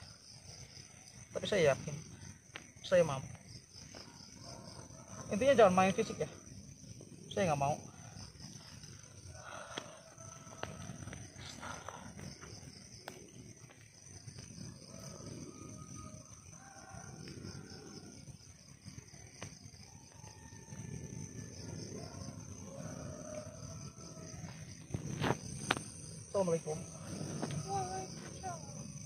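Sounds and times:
steady high-pitched whine: 0:00.0 - 0:29.0.

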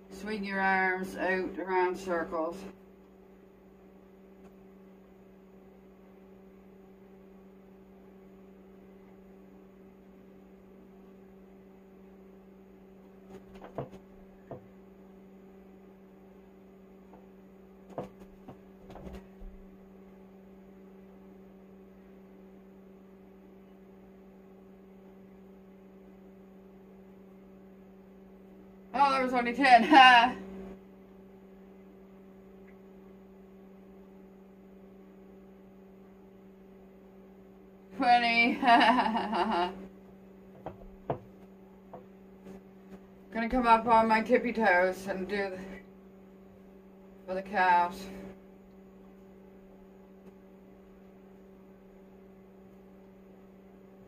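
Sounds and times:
faint electrical hum: 0:00.0 - 0:54.0.

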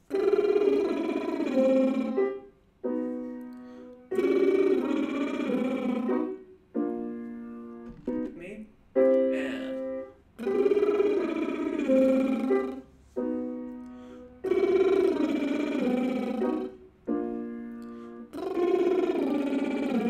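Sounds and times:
piano notes: 0:00.0 - 0:20.0
person singing arpeggio: 0:00.1 - 0:02.4, 0:04.1 - 0:06.4, 0:10.4 - 0:12.9, 0:14.4 - 0:16.8, 0:18.3 - 0:20.0.

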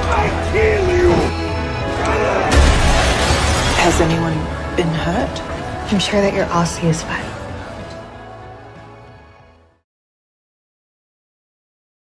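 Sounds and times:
music: 0:00.0 - 0:09.9
crash with shattering: 0:02.5 - 0:04.4.

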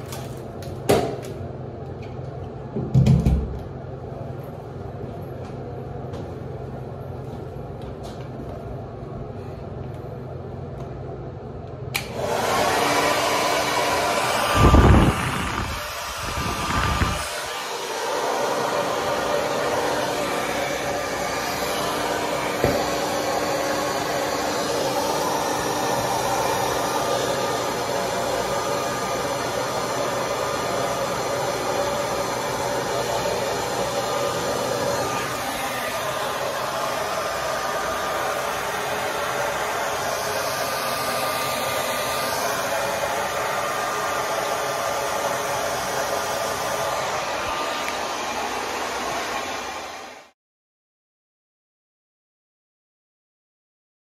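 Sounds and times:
click: 0:11.7 - 0:12.1
hair dryer blowing: 0:11.9 - 0:50.4.

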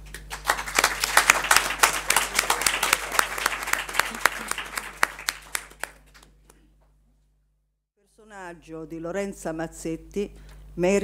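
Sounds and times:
audience applauding: 0:00.2 - 0:06.4.

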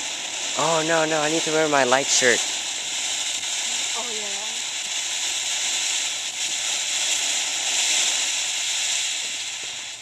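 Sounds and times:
fountain firework hissing: 0:00.0 - 0:10.0.

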